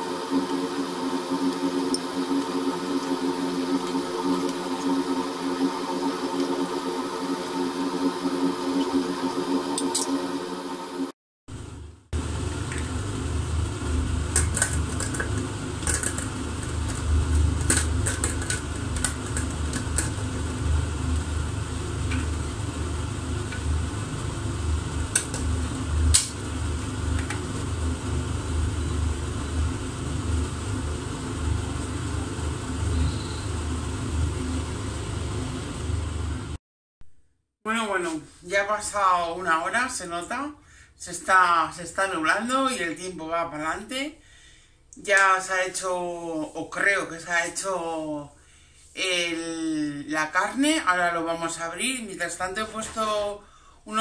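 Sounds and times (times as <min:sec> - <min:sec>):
induction hob hum: 0:00.0 - 0:36.6
pot boiling: 0:00.0 - 0:36.6.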